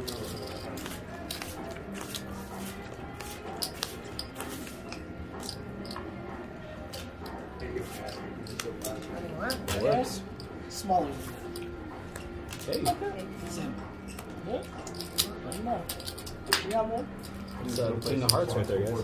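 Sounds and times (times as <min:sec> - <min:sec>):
background music: 0:00.0 - 0:19.0
cards and chips clicking: 0:00.0 - 0:19.0
murmur of voices: 0:00.0 - 0:19.0.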